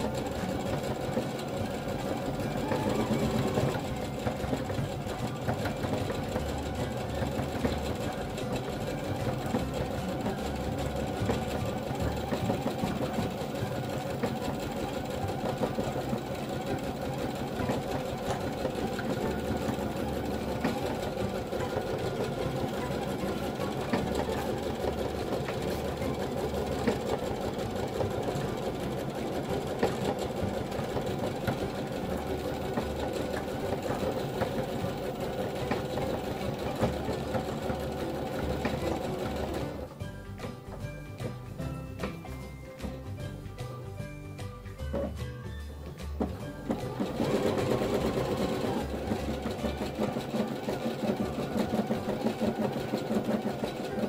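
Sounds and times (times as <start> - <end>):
embroidery machine stitching: 0.0 - 40.5, 46.0 - 54.0.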